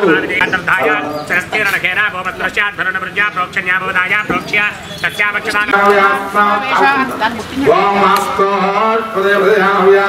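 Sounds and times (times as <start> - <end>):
man chanting: 5.2 - 6.8, 7.6 - 10.0.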